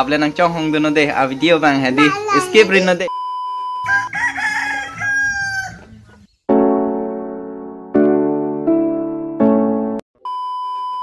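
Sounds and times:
rooster crowing: 3.8 - 6.0.

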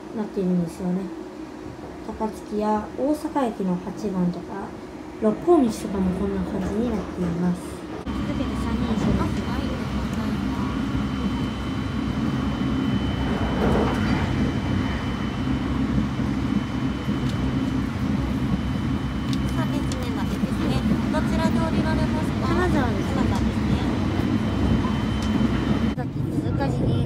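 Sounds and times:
train wheels rumbling on rails: 1.7 - 27.0.

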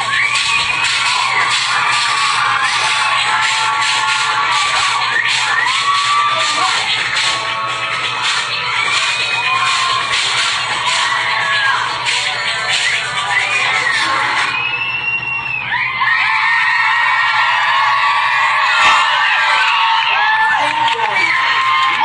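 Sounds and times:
loud music: 0.0 - 14.7, 17.7 - 22.0
crowd screaming and cheering: 0.0 - 22.0.

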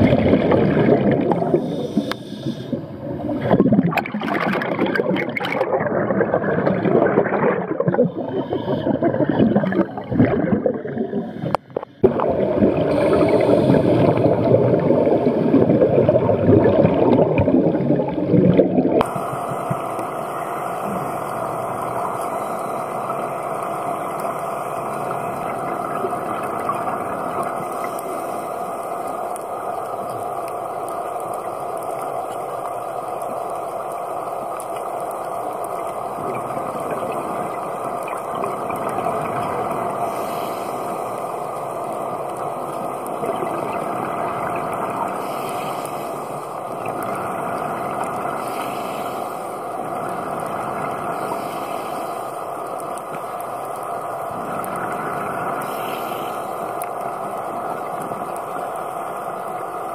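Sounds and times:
underwater low drone: 0.0 - 59.9.

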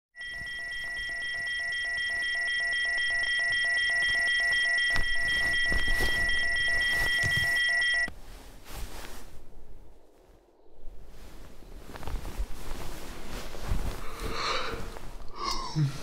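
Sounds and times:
phone alarm pulsing beeps: 0.2 - 8.1.

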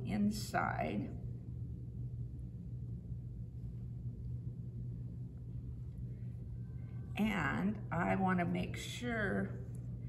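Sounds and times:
low hum of room tone: 0.0 - 10.0.

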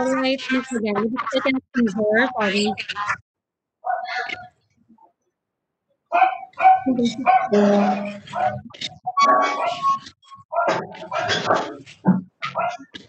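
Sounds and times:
dog barking: 0.0 - 0.7, 3.8 - 4.5, 6.1 - 12.9
indistinct voices: 0.0 - 3.2, 3.9 - 5.1, 6.4 - 13.0.

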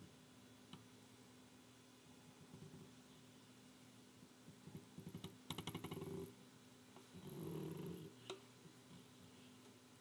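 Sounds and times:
soft steady sound: 0.0 - 10.0.

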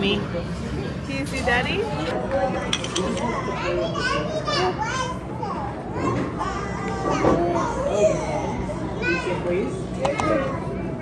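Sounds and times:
children chattering and calling out: 1.8 - 11.0.

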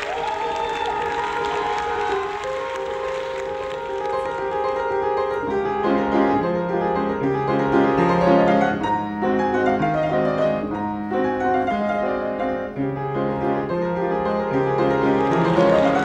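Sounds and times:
solo piano piece: 1.0 - 16.0.

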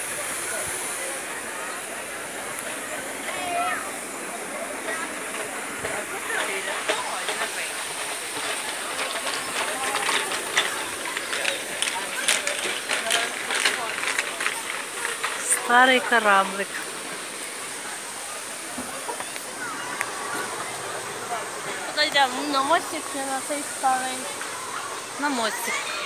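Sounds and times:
indistinct chatter: 0.0 - 26.0
steady hiss: 0.0 - 26.0.

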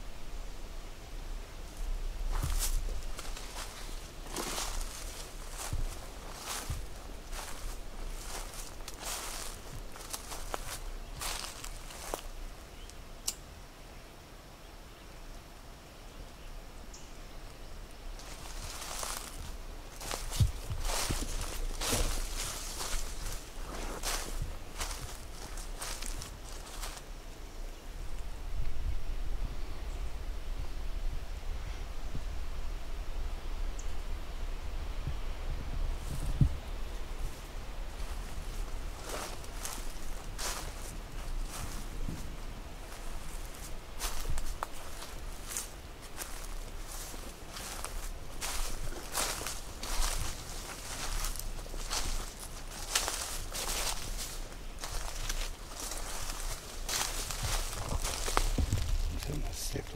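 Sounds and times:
footsteps through dead leaves: 1.7 - 12.5, 18.2 - 27.1, 37.2 - 59.9.

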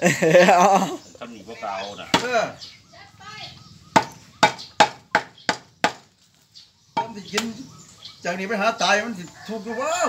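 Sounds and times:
cleaver chopping on wooden block: 3.9 - 6.1.

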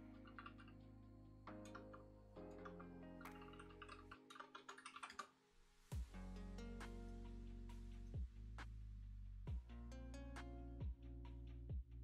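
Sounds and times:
typing on computer keyboard: 2.6 - 5.3.

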